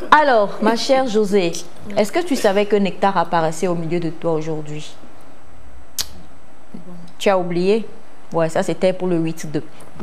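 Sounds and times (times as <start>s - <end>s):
short sharp click: 6.0s - 6.2s.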